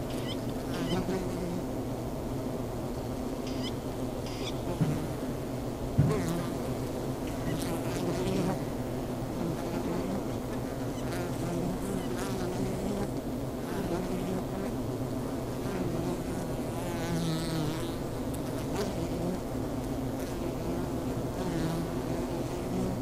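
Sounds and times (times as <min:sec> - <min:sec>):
honeybees buzzing: 0:00.0 - 0:23.0.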